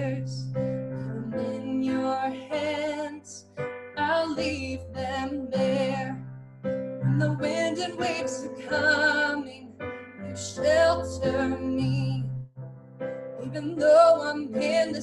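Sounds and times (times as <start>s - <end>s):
woman singing with vibrato: 0.0s - 0.4s, 1.1s - 6.2s, 7.0s - 12.4s, 13.4s - 15.0s
keyboard piano chords: 0.0s - 15.0s.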